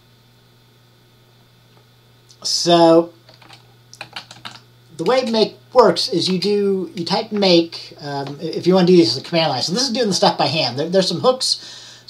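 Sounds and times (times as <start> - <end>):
computer keyboard typing: 3.3 - 5.4.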